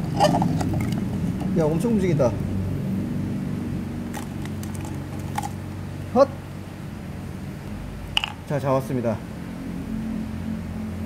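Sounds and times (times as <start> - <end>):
low background hum: 0.0 - 11.0
plastic bottle clicks and crackles: 8.2 - 8.4.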